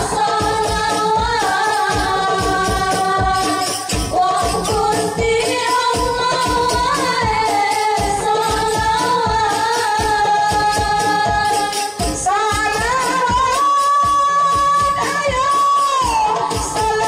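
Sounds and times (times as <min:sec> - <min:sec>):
women singing together: 0:00.0 - 0:17.0.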